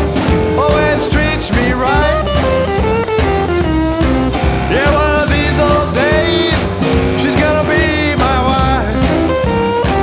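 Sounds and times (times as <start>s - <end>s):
bass and drums: 0.0s - 10.0s
electric guitar lead: 0.0s - 10.0s.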